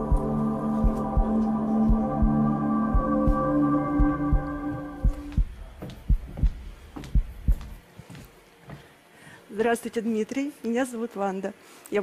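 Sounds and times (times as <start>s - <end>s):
heartbeat thumps: 0.0s - 7.9s.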